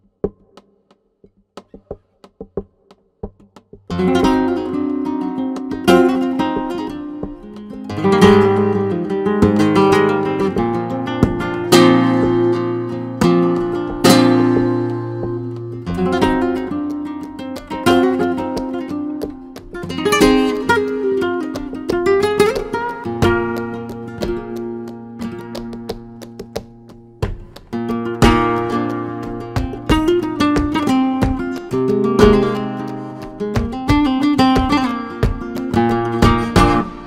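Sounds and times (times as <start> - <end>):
solo flamenco guitar: 1.5 - 37.0
light taps: 9.4 - 37.0.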